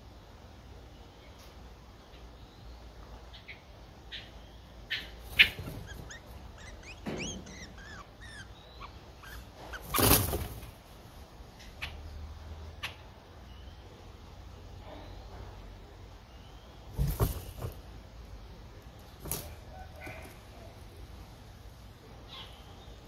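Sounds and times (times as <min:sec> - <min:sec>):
nestlings begging chirps: 0:03.3 - 0:10.4.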